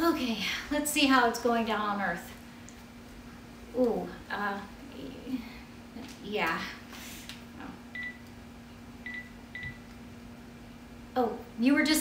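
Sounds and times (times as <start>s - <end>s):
phone keypad beeps: 9.1s - 9.8s.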